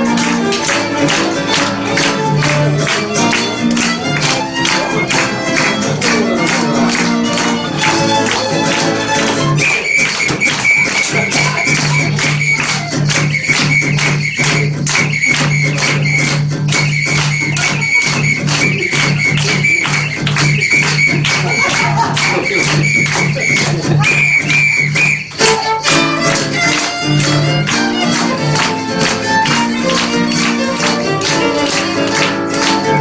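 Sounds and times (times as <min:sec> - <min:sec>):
live music with sharp strikes: 0:00.0 - 0:33.0.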